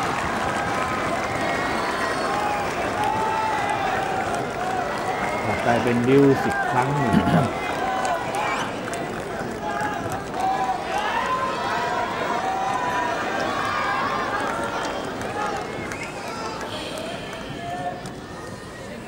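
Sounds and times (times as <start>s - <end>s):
crowd chatter and calls: 0.0s - 19.0s
person coughing: 7.1s - 7.5s.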